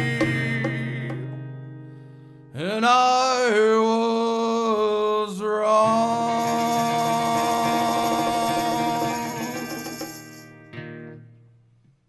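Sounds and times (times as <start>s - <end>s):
person singing long note: 2.6s - 10.0s.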